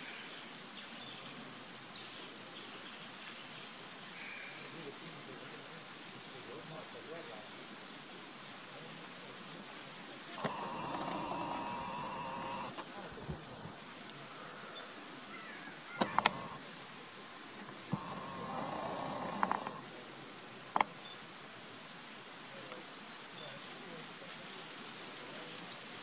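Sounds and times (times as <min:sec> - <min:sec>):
faint outdoor hiss: 0:00.0 - 0:26.0
camera zoom motor whirring: 0:10.4 - 0:12.9, 0:16.0 - 0:16.6, 0:17.9 - 0:19.8.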